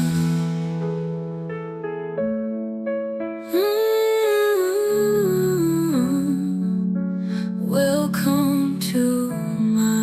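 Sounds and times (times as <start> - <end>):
soft musical accompaniment: 0.0 - 10.0.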